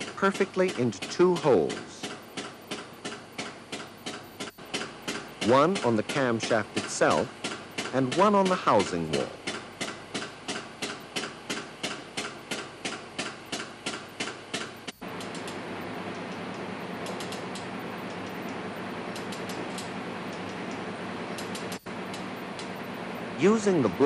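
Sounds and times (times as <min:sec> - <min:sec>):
sharp mechanical clicking: 0:00.1 - 0:20.8, 0:21.4 - 0:23.0.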